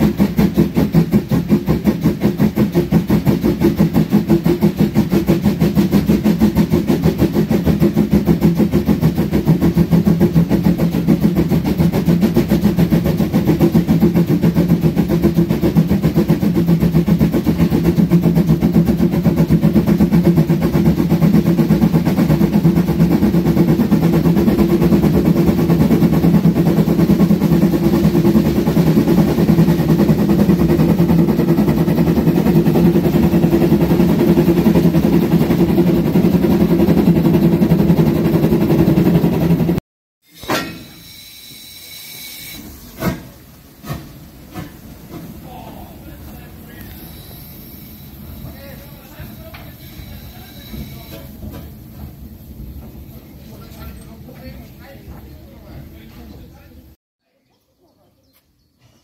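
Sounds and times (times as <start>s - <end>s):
steam locomotive exhaust beats: 0.0s - 39.8s, 40.7s - 57.0s.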